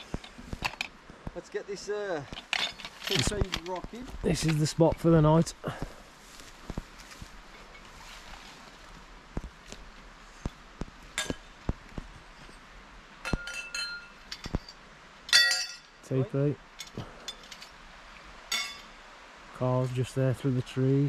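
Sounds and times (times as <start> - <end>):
light clicks and knocks: 2.2 - 5.2.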